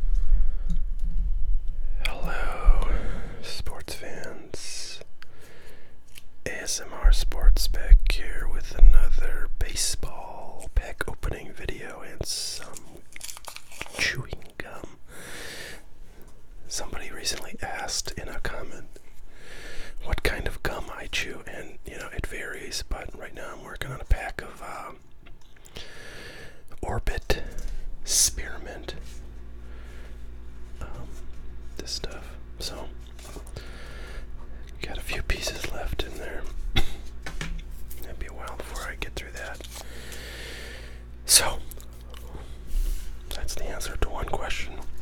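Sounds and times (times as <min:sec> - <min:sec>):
person whispering: 0:02.0 - 0:05.1, 0:06.5 - 0:13.0, 0:13.9 - 0:15.0, 0:16.7 - 0:18.9, 0:20.0 - 0:25.0, 0:26.7 - 0:29.2, 0:30.8 - 0:33.0, 0:34.8 - 0:37.0, 0:37.9 - 0:39.8, 0:41.3 - 0:42.4, 0:43.3 - 0:45.0.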